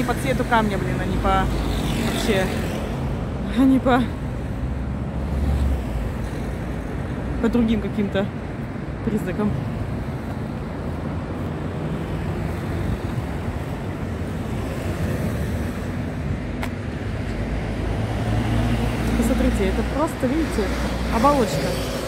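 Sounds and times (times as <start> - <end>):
road traffic: 0.0 - 22.0.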